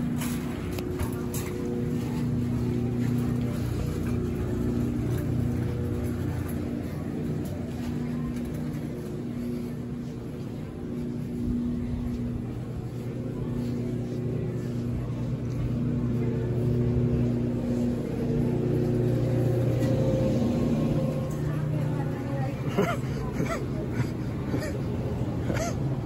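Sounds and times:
faint supermarket background noise: 0.0 - 26.0.

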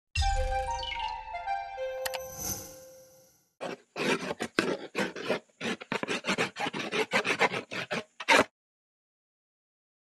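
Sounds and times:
pen scratching on paper: 3.6 - 8.5.

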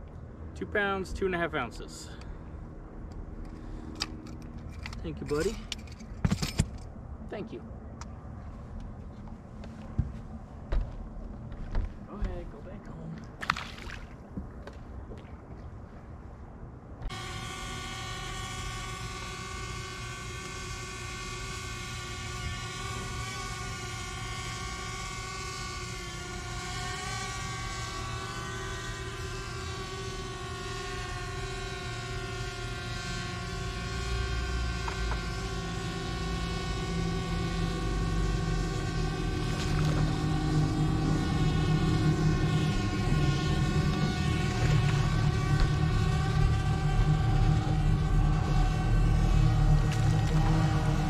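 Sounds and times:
electric boat motor whining: 17.0 - 51.0.

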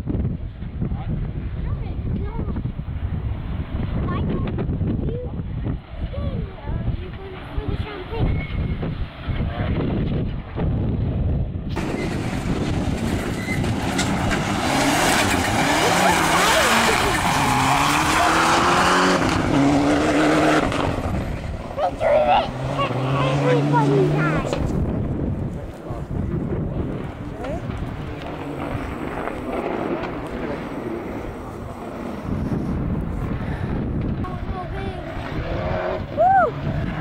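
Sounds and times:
rally car engine revving: 11.7 - 37.0
tyres on gravel: 11.8 - 32.4.

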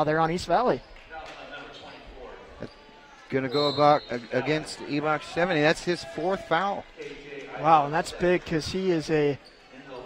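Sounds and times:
voices echoing in a gym: 0.0 - 10.0.

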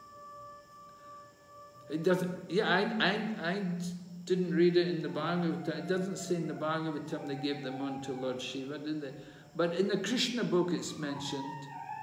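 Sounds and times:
faint ringing tone: 0.0 - 12.0.

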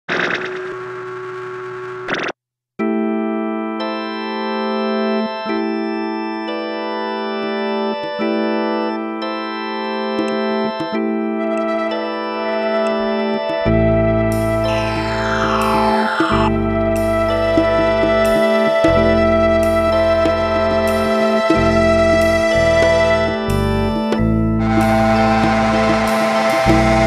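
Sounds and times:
held keyboard chords: 2.8 - 27.0
dense chord: 14.3 - 18.5
deep bass note: 14.5 - 18.2.

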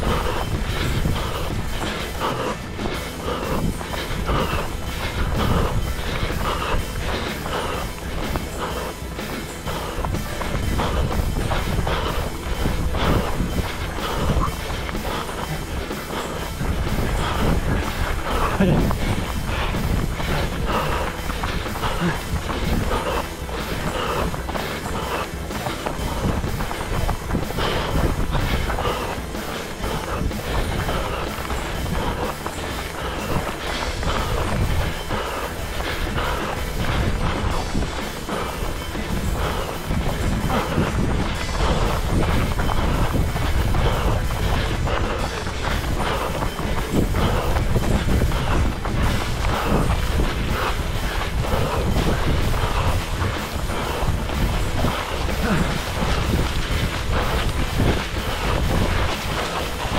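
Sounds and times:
running footsteps on forest ground: 0.0 - 59.9
wind: 0.0 - 59.9.

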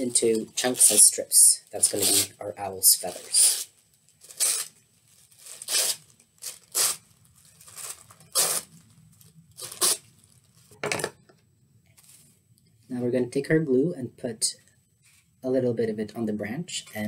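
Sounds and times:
tissue paper tearing: 0.6 - 8.8, 9.5 - 10.6.

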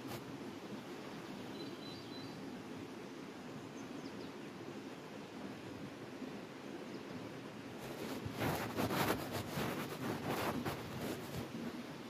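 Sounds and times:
faint outdoor background: 0.0 - 12.0
rustling and scraping: 7.8 - 11.7.

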